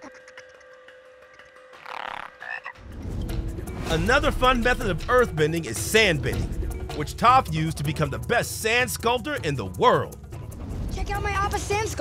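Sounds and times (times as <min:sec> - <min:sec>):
cartoon rattling croak: 0:00.0 - 0:02.8.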